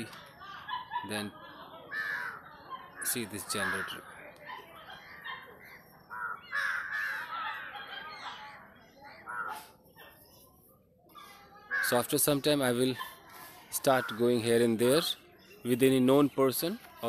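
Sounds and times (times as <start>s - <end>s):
crows cawing: 1.9s - 4.2s, 5.0s - 7.8s, 9.2s - 9.7s, 11.6s - 12.4s, 13.9s - 14.4s.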